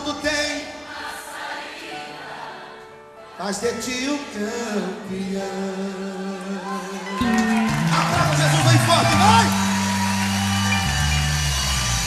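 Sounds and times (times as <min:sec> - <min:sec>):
gospel band playing chords: 0:03.2 - 0:12.0.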